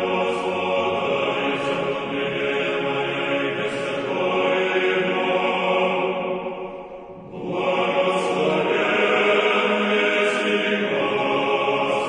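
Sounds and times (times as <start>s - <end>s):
choral chant in held chords: 0.0s - 12.0s.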